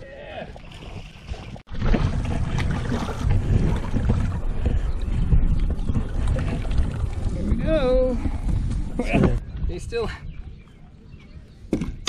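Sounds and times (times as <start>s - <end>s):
water splashes: 0.2s - 9.4s
wind rumbling on microphone: 0.6s - 12.0s.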